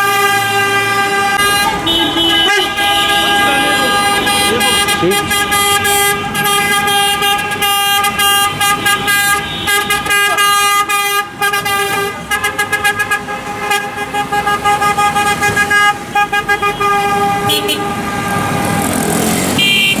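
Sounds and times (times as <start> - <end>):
car horns honking: 0.0 - 20.0.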